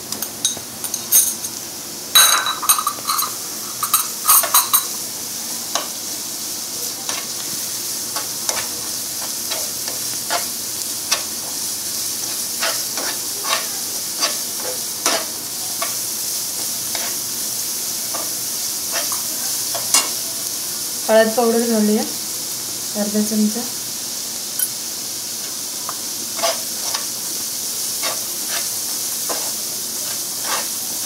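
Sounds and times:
food sizzling in hot oil: 0:00.0 - 0:31.0
spatula scraping a pan: 0:08.1 - 0:11.6, 0:12.2 - 0:16.0, 0:16.6 - 0:17.3, 0:18.1 - 0:20.2, 0:26.3 - 0:27.2, 0:27.8 - 0:31.0.

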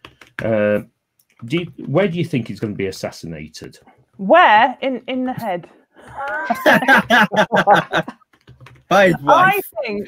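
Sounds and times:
people laughing: 0:06.1 - 0:08.2, 0:08.9 - 0:09.6.

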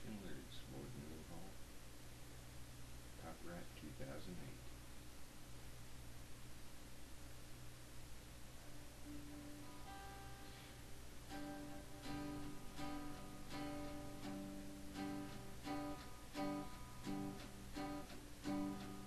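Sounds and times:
low steady hum: 0:00.0 - 0:19.0
acoustic guitar strumming: 0:09.0 - 0:19.0.

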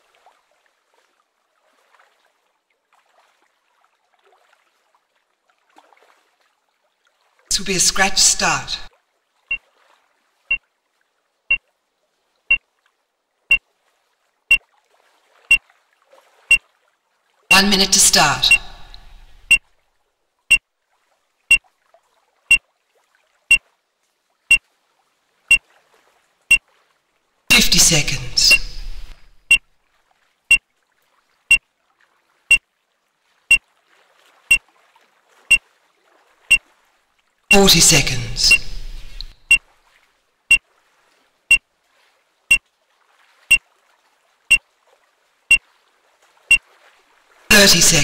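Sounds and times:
race start timer beeping: 0:17.5 - 0:19.6, 0:27.5 - 0:29.6, 0:37.5 - 0:39.6.

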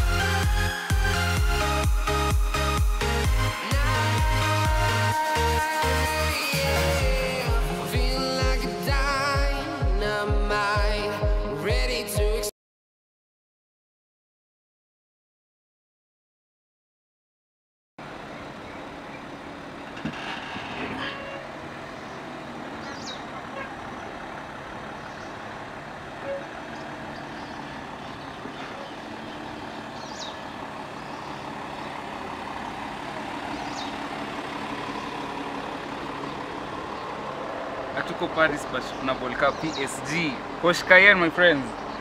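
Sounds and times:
car engine idling: 0:18.0 - 0:42.0.

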